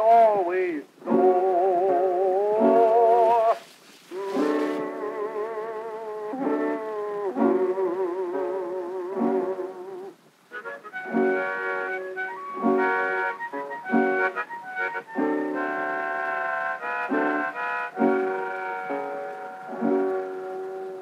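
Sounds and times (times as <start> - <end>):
record crackle: 0.0 - 21.0
harmonica chords: 1.0 - 21.0.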